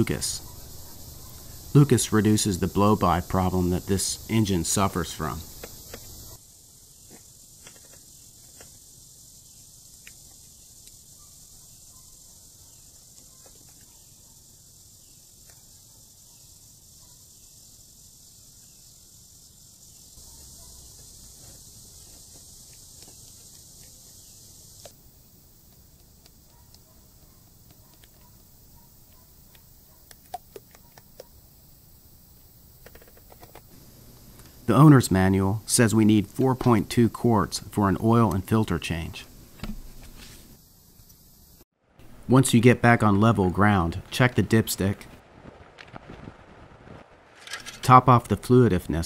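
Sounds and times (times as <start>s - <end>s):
faint steady hiss: 0.0s - 49.0s.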